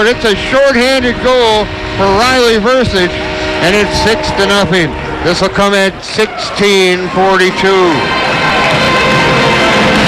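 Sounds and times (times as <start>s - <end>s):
music: 0.0s - 5.9s, 6.6s - 10.0s
commentator speaking: 0.0s - 8.0s
crowd noise: 0.0s - 10.0s.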